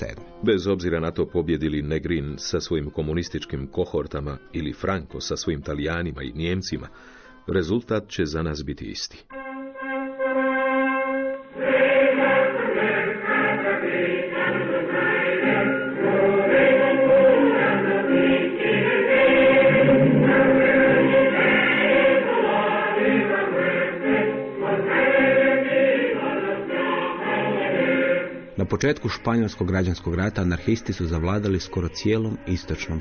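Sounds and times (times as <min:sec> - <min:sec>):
choir singing with music: 0:09.3 - 0:33.0.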